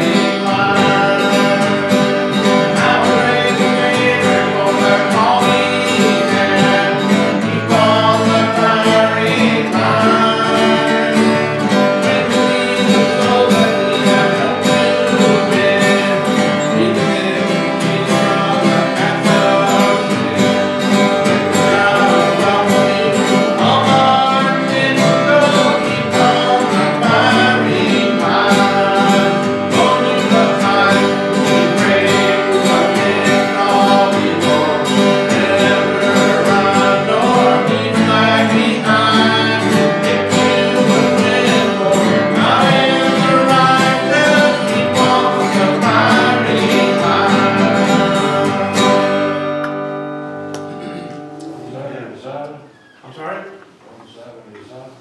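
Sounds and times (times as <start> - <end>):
person singing: 0.0 - 49.5
acoustic guitar strummed: 0.0 - 53.4.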